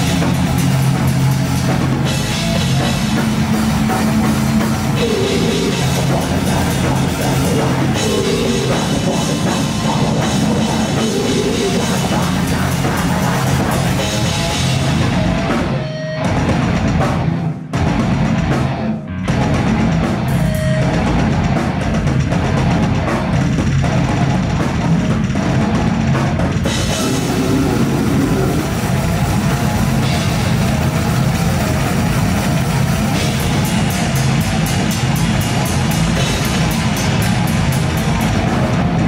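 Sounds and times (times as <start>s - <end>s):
fast drum run: 0.0s - 39.0s
heavy metal music: 0.0s - 39.0s.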